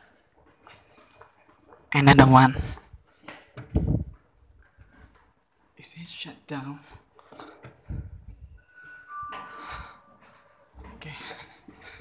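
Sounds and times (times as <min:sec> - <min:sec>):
two-tone electronic chime: 0:08.5 - 0:10.4.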